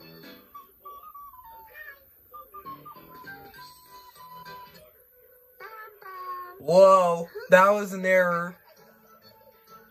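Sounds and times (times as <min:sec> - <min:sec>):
cartoon music from tv speaker: 0:00.0 - 0:09.9.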